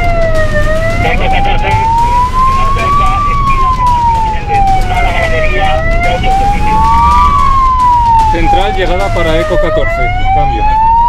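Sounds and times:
engine and road rumble: 0:00.0 - 0:11.0
fire engine siren wailing: 0:00.0 - 0:11.0.

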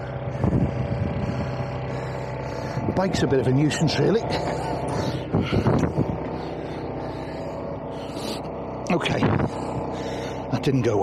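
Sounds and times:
diesel engine ticking over: 0:00.0 - 0:11.0.

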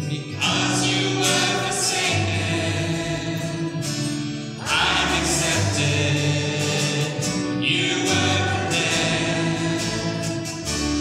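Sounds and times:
acoustic guitars: 0:00.0 - 0:11.0
group singing together: 0:00.0 - 0:11.0
upright bass: 0:00.0 - 0:11.0.

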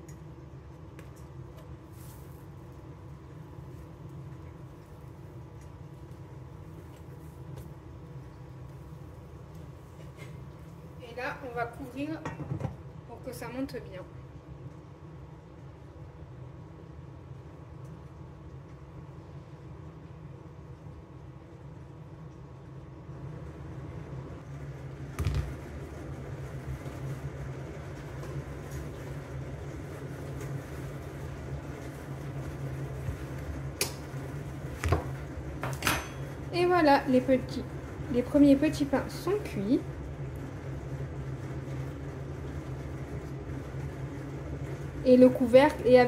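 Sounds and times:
kitchen appliance humming: 0:22.7 - 0:46.0.

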